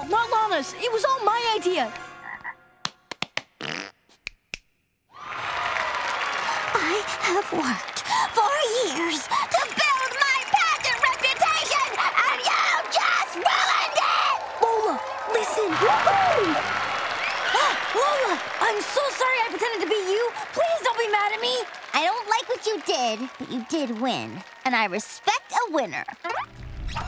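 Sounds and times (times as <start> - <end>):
audience applauding: 5.2 - 26.5
excited voices calling out: 6.6 - 26.2.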